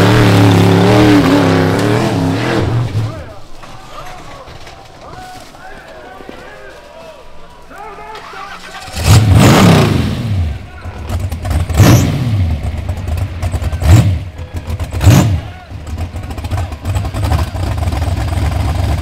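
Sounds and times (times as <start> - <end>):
buggy engine revving: 0.0 - 3.4, 8.3 - 19.0.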